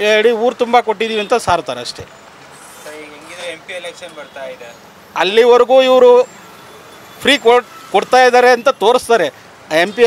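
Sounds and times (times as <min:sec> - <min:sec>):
street traffic noise: 0:00.0 - 0:10.0.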